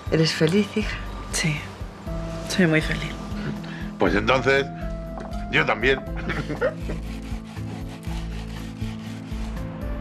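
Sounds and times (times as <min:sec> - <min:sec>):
soft background music: 0:00.0 - 0:10.0
hand tool scraping wood: 0:06.4 - 0:09.7.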